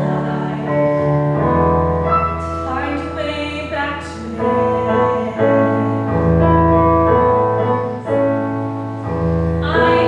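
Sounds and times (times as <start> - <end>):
woman singing: 0.0 - 1.8, 2.4 - 6.6, 9.6 - 10.0
piano ballad chords: 0.0 - 10.0.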